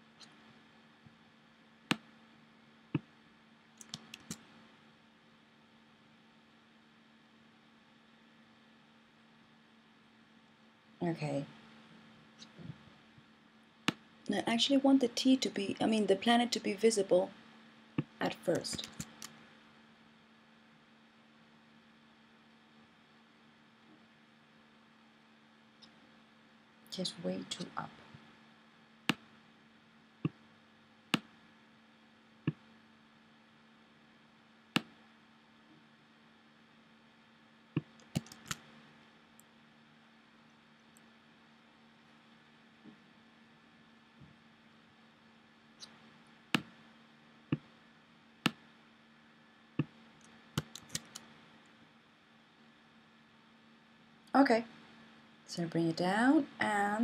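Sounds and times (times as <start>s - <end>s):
faint steady hum: 0.0s - 57.0s
computer mouse clicking: 3.8s - 4.4s, 18.7s - 19.4s, 37.8s - 38.6s, 50.6s - 51.3s.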